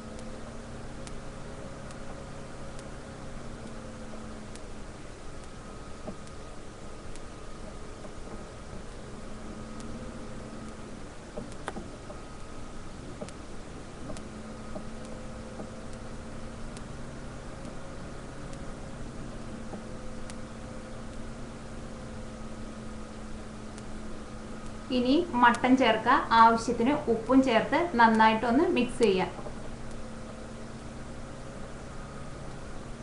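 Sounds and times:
faint steady hum: 0:00.0 - 0:33.0.

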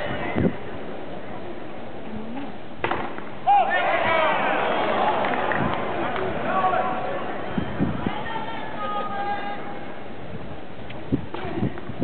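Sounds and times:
spectators reacting: 0:03.4 - 0:09.6.

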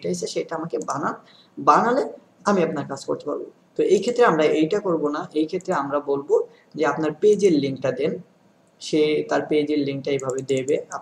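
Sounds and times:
man talking: 0:00.0 - 0:11.0
computer keyboard clicking: 0:10.2 - 0:10.9.

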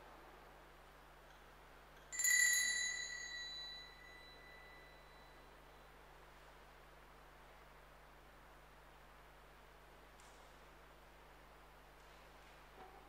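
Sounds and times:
handbell ringing: 0:02.1 - 0:05.4.

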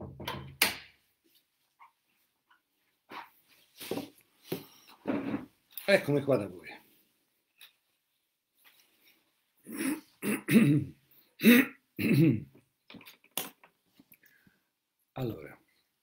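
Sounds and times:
man clearing throat and coughing: 0:09.7 - 0:12.6.

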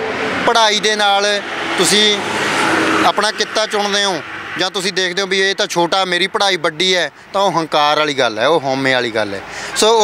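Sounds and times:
man speaking: 0:00.4 - 0:02.3, 0:03.0 - 0:10.0.

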